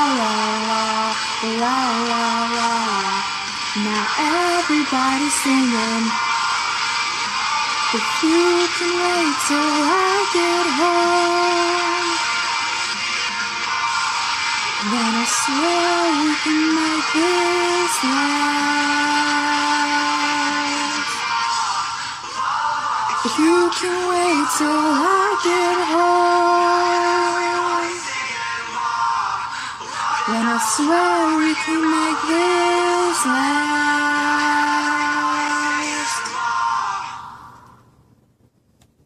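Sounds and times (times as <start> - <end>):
woman singing a long note: 0.0 - 6.2, 7.9 - 12.2, 14.8 - 21.2, 23.2 - 28.1, 30.3 - 36.3.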